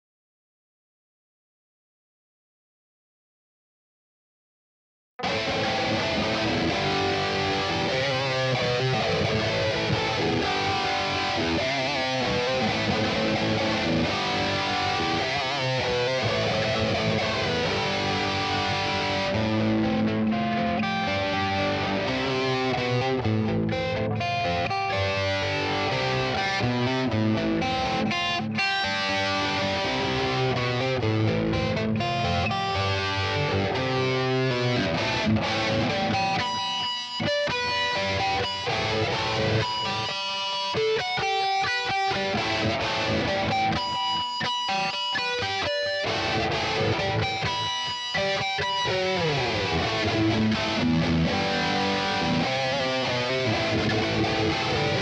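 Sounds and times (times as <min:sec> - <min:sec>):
distorted electric guitar riff: 0:05.2 - 0:55.0.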